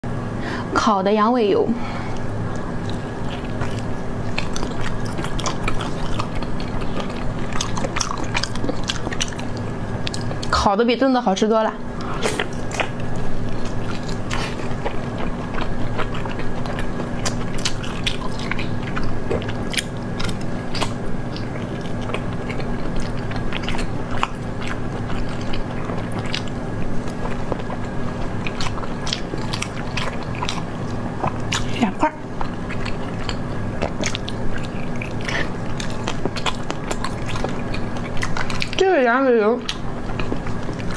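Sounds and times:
faint steady hum: 0.0s - 40.9s
chewing with wet mouth clicks: 2.1s - 10.7s, 11.9s - 40.9s.

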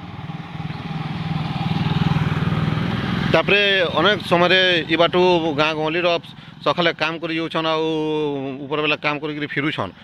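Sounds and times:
motorcycle engine passing: 0.0s - 8.6s.

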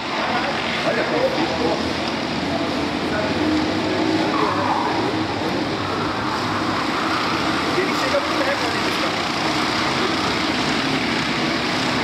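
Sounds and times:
kart engines droning: 0.0s - 12.0s.

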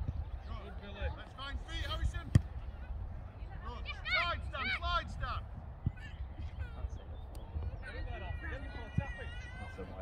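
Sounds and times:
football kicked: 2.2s - 2.6s
faint shouts of players: 7.9s - 10.0s.

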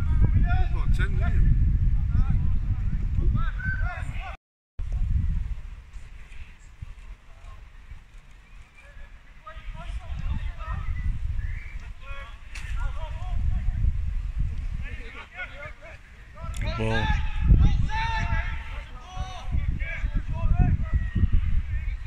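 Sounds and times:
wind rumble on microphone: 0.0s - 22.0s.

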